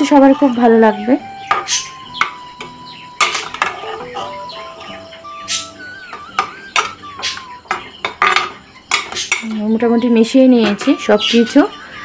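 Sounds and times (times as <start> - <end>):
metal ladle scraping pot: 3.2 - 5.7.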